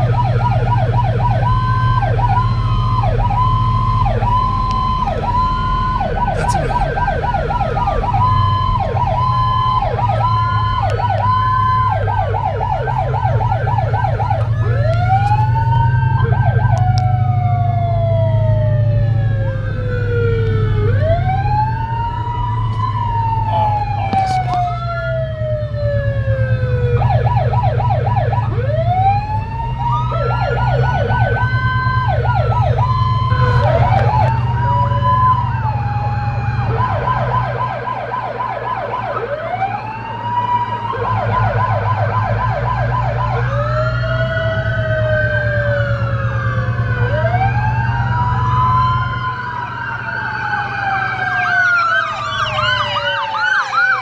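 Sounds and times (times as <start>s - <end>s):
fast yelping sirens: 0.0s - 54.0s
wailing police sirens: 0.0s - 54.0s.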